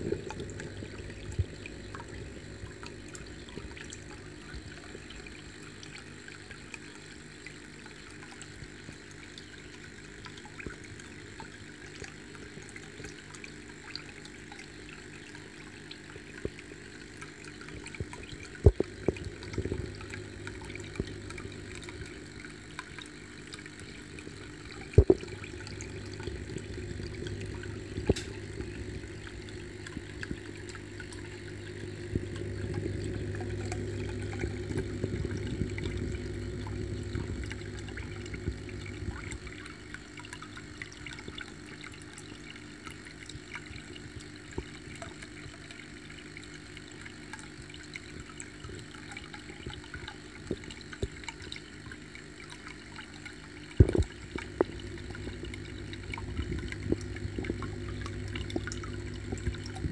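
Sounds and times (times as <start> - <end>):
aquarium filter humming: 0.0 - 59.9
trickling water: 0.0 - 59.9.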